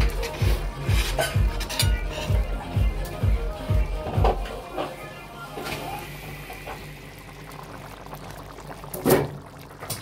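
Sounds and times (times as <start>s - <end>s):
sauce bubbling in a pan: 6.0s - 10.0s.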